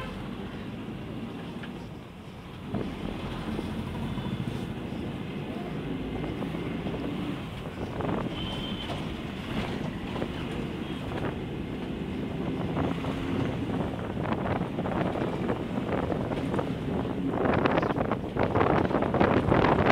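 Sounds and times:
road noise: 0.0 - 19.9
vehicle engine drone: 0.0 - 19.9
wind buffeting microphone: 2.6 - 19.9.

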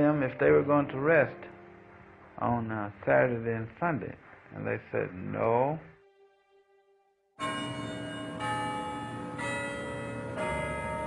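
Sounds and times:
church bells ringing: 7.4 - 11.0.

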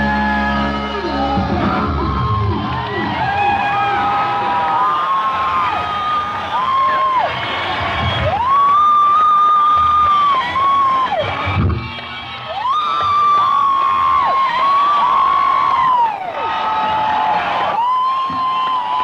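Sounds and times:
concert audience cheering: 0.0 - 19.0
loud whistles: 1.5 - 11.4.

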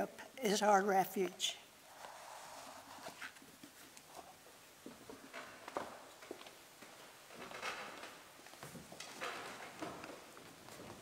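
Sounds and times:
footsteps: 2.6 - 11.0.

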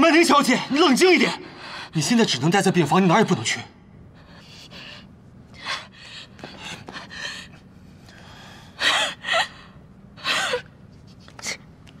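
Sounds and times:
woman gasping and sobbing: 8.2 - 10.8.

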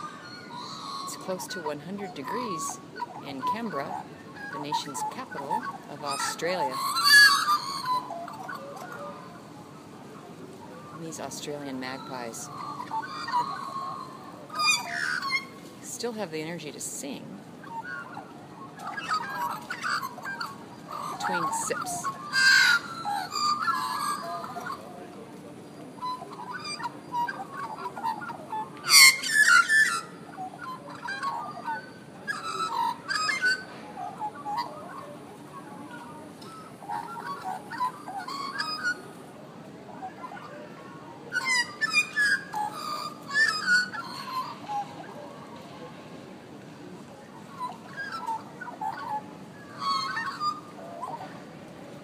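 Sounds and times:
magpies warbling calls: 0.0 - 9.9, 10.6 - 25.1, 25.7 - 39.2, 39.9 - 45.6, 47.4 - 51.4
low background noise: 0.0 - 52.0.

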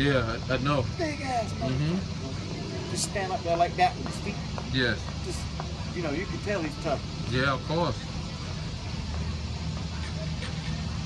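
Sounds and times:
faint voices: 0.0 - 11.0
low engine rumble: 0.0 - 11.0.

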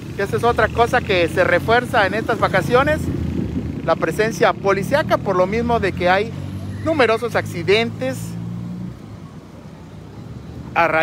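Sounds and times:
faint traffic noise: 0.0 - 11.0.

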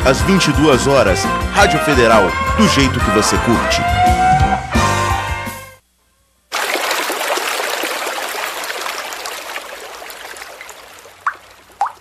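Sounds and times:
running water: 6.5 - 12.0
water drips: 6.5 - 12.0.

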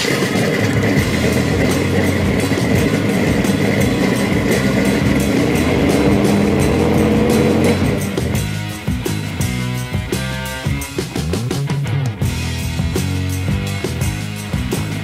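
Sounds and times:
music: 0.0 - 15.0
vehicle engine accelerating: 0.0 - 15.0.

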